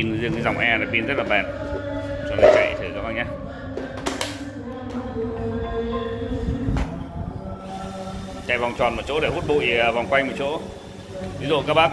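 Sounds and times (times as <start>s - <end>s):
background music: 0.0s - 11.9s.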